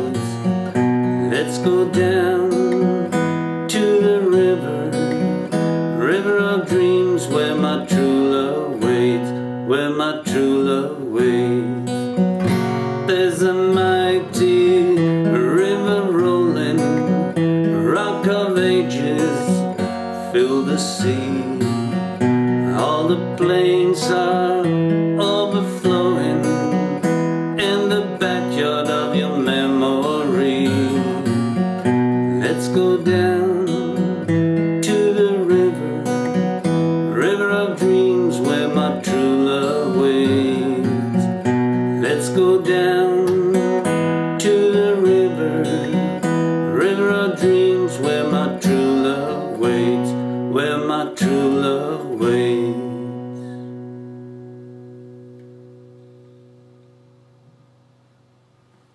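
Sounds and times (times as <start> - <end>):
acoustic guitar playing: 0.0 - 58.9.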